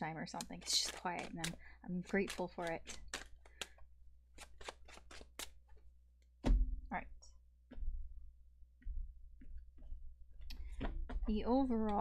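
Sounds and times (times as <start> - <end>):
woman speaking: 0.0 - 2.9, 6.9 - 7.3, 11.3 - 12.0
cards snapping and tapping: 0.6 - 3.8, 4.4 - 5.7.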